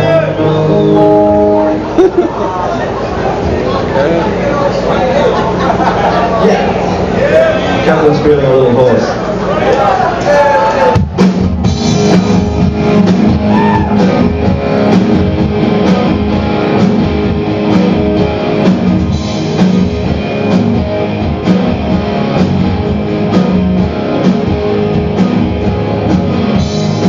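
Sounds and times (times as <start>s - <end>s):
punk rock band playing: 0.0s - 3.5s, 9.9s - 27.0s
drum hits: 10.9s - 27.0s.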